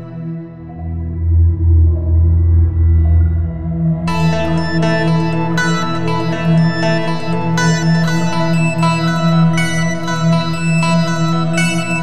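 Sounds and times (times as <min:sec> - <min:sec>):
deep ambient drone: 0:00.0 - 0:12.0.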